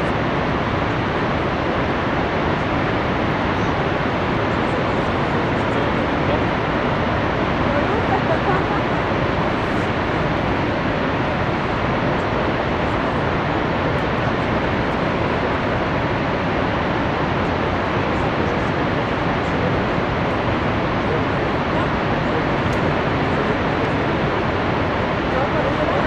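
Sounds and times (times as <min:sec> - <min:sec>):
waterfall rushing: 0:00.0 - 0:26.0.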